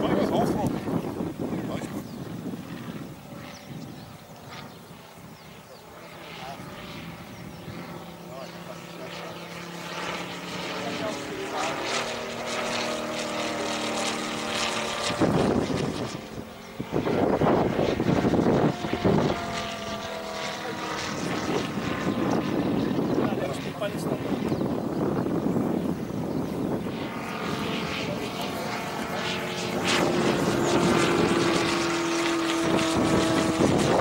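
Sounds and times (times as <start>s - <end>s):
model plane radial engine droning: 0.0s - 34.0s.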